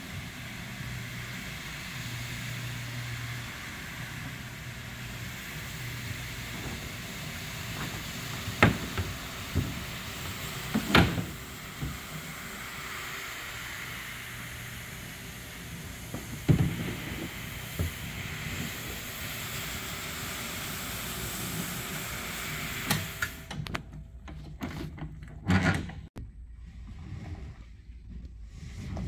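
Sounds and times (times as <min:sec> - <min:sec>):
floor machine scrubbing rug: 0:00.0 - 0:23.4, 0:26.9 - 0:29.0
knocks and clunks: 0:06.5 - 0:12.3, 0:15.9 - 0:18.7.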